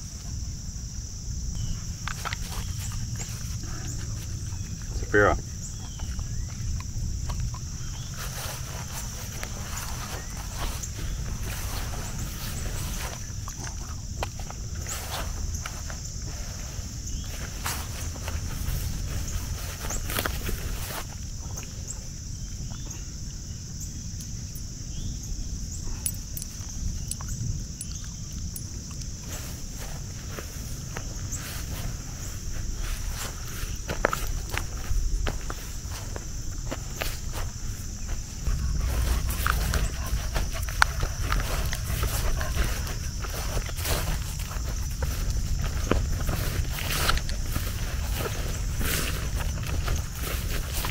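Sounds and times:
high-pitched insect chorus: 0.0 - 50.9
steady high-pitched hiss: 0.0 - 50.9
footsteps through grass: 1.6 - 5.0, 5.6 - 21.4, 29.1 - 50.9.

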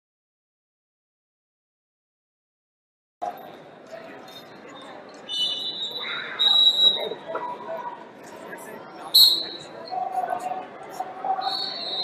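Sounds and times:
referee's whistle blast: 5.3 - 7.2, 9.1 - 9.6, 11.4 - 12.0.

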